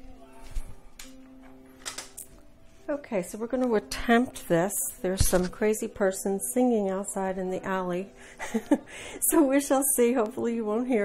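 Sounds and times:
faint singing voice: 0:00.0 - 0:01.6.

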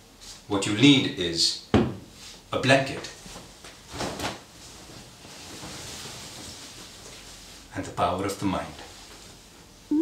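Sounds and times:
fabric rustling: 0:03.3 - 0:07.7.

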